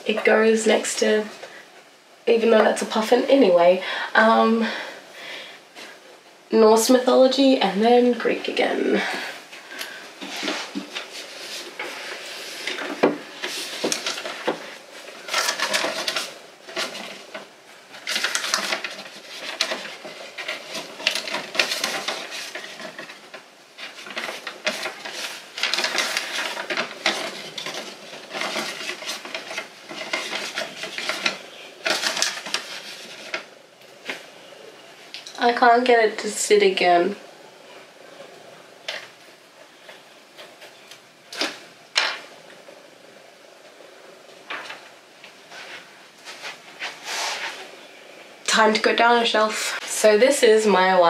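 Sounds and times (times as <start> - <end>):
books sliding on a bookshelf: 9.1 - 17.2, 45.5 - 47.7.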